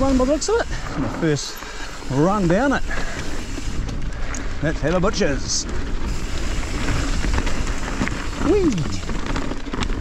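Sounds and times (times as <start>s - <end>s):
bike tyres rushing on dirt: 0.0s - 10.0s
bike clicking and knocking: 1.5s - 10.0s.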